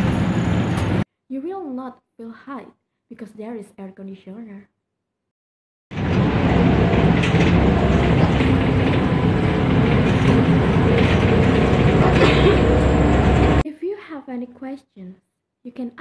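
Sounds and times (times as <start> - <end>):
bus engine hum: 0.0 - 1.0, 6.0 - 13.6
road rumble: 5.9 - 13.6.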